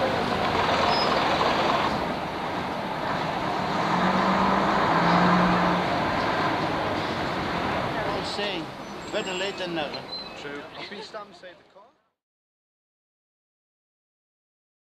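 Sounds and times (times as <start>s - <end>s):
bus engines running: 0.0s - 11.6s.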